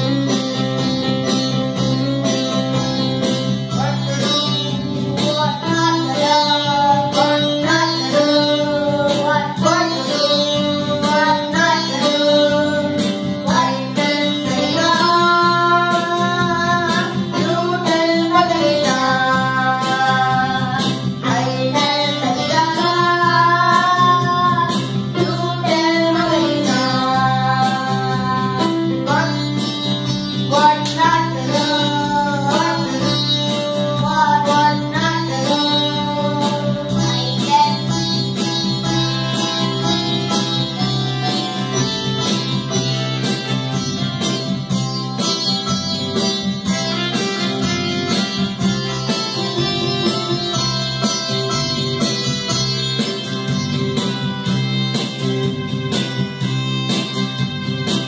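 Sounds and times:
electronic keyboard chords: 0.0s - 58.0s
child singing: 3.7s - 29.6s, 30.4s - 38.5s.

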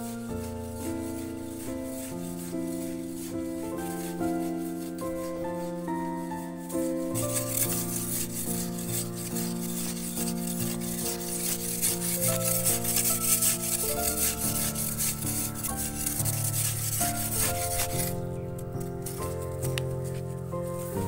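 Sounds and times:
hoe scraping dry soil: 0.0s - 21.0s.

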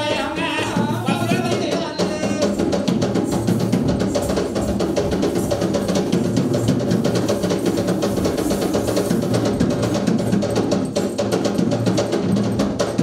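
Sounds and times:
accompanying music: 0.0s - 11.9s
fast hand drumming: 0.0s - 13.0s.

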